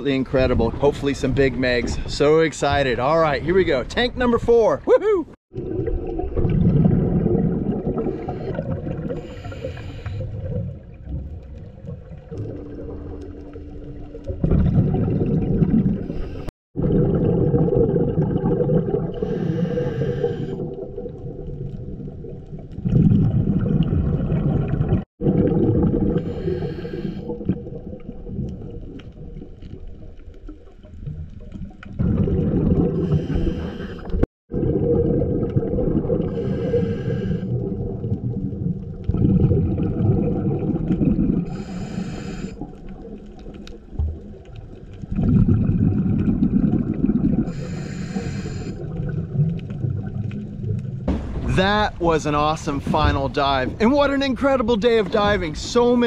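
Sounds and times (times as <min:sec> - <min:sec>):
exhaled bubbles rushing: 0:05.5 - 0:53.9
diver inhaling through regulator: 0:08.0 - 0:10.4, 0:19.2 - 0:20.8, 0:26.2 - 0:27.5, 0:32.9 - 0:34.2, 0:36.2 - 0:37.6, 0:41.4 - 0:42.7, 0:47.5 - 0:48.9.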